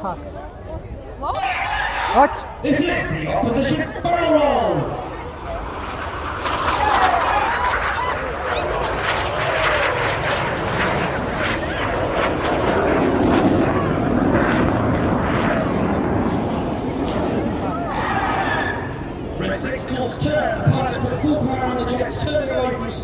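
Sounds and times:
jet aircraft passing low: 0.0s - 23.0s.

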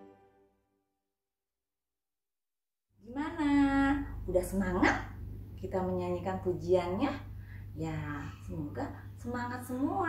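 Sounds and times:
steady low hum: 3.0s - 10.0s.

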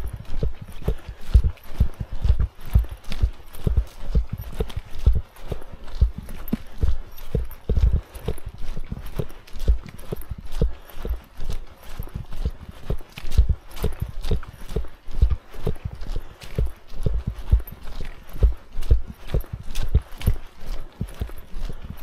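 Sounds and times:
footsteps on leafy dirt trail: 0.0s - 22.0s.

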